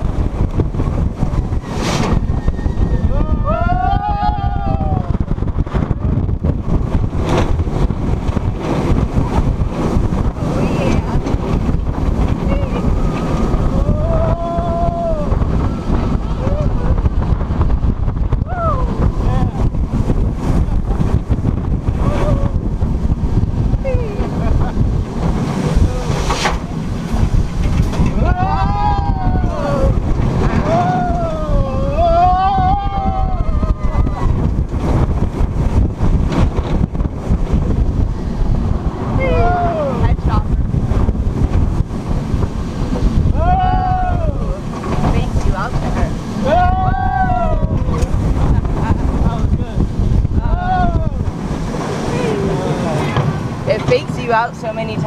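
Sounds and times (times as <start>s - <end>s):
wind roaring on microphone: 0.0s - 55.0s
riders yelling and whooping: 2.4s - 5.5s, 12.4s - 17.6s, 18.4s - 19.7s, 21.9s - 22.8s, 28.0s - 34.7s, 39.0s - 40.4s, 43.1s - 45.6s, 46.4s - 48.7s, 49.4s - 53.2s.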